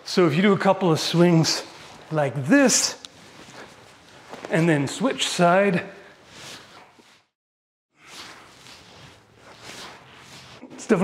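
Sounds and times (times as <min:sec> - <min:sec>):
sword swinging whooshes: 0:08.0 - 0:10.7.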